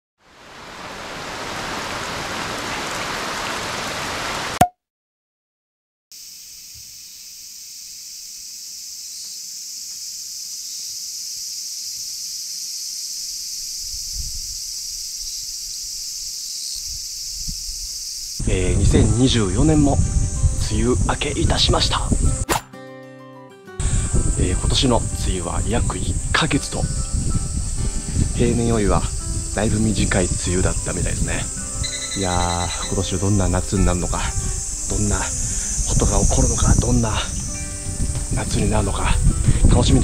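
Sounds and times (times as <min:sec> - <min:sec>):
steady rain-like noise: 0:00.2 - 0:04.6
insect chorus: 0:06.1 - 0:22.4, 0:23.8 - 0:40.0.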